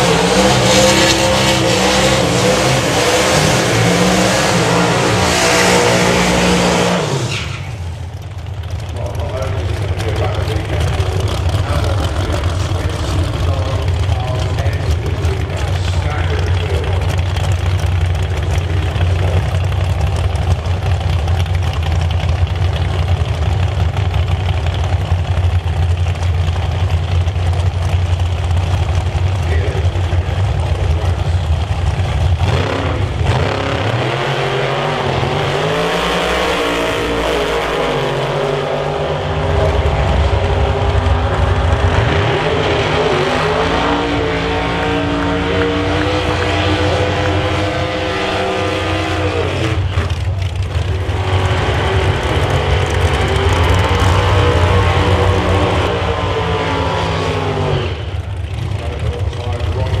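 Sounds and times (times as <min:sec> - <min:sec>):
constant engine drone: 0:00.0 - 1:00.0
drag car engines revving: 0:00.0 - 1:00.0.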